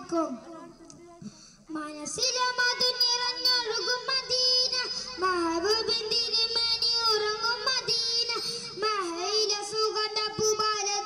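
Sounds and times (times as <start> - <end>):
boy singing into microphone: 0.0 - 11.0.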